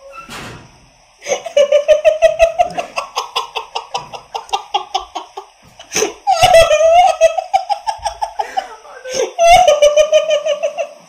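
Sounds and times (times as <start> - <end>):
man laughing hard: 1.2 - 11.0.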